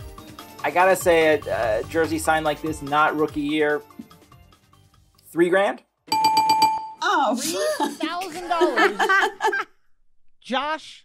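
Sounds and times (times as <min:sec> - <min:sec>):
trilling bell sound effect: 0:06.1 - 0:07.0.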